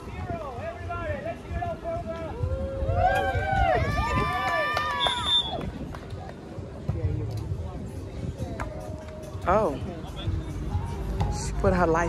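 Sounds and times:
people calling and shouting: 0.0s - 12.0s.

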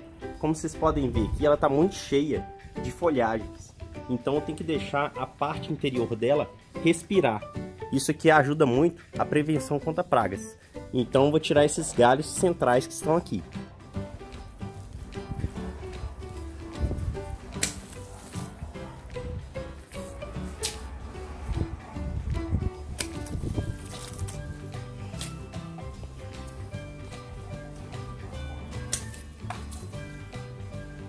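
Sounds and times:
background music: 0.0s - 31.0s
pruning shears snipping branches: 17.2s - 18.7s, 19.8s - 21.0s, 22.8s - 26.7s, 28.7s - 30.2s.

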